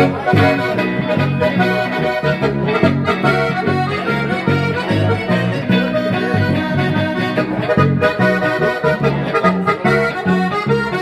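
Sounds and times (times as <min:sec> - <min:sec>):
bass notes: 0:00.0 - 0:11.0
button accordion playing chords: 0:00.0 - 0:11.0
guitar strumming: 0:00.0 - 0:11.0.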